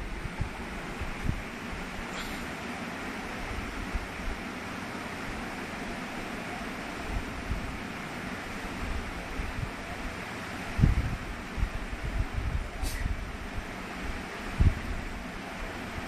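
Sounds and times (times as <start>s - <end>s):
steady background noise: 0.0s - 16.0s.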